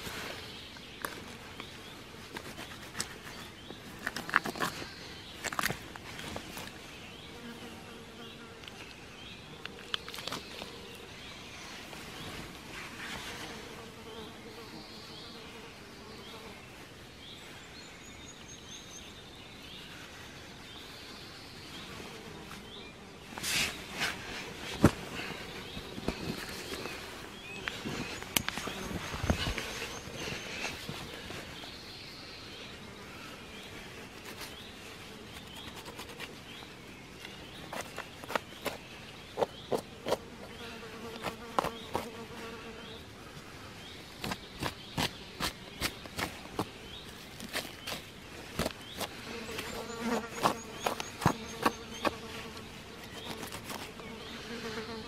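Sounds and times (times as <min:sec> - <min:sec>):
fly buzzing: 0:21.8 - 0:31.6, 0:37.7 - 0:43.5, 0:44.2 - 0:55.0.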